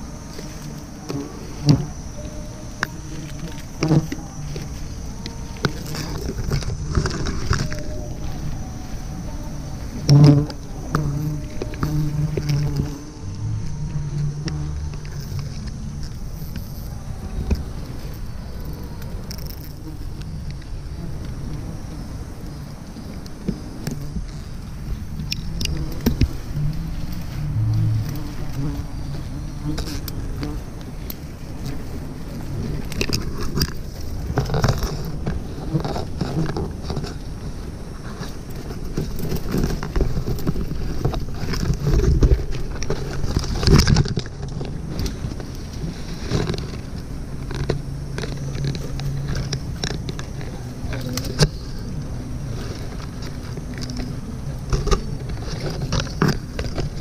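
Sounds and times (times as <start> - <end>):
bees buzzing: 0.0 - 57.0
leaves rustling: 0.0 - 57.0.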